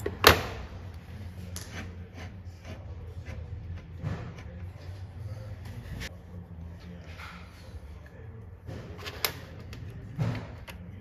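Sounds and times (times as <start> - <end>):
low workshop hum: 0.0 - 11.0.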